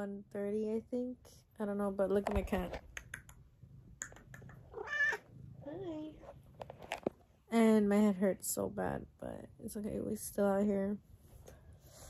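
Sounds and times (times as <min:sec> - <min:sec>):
cat meowing: 0:04.7 - 0:05.2.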